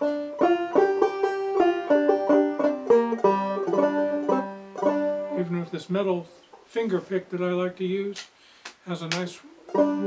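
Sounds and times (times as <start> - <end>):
banjo plucked notes: 0.0 - 6.4, 9.5 - 10.0.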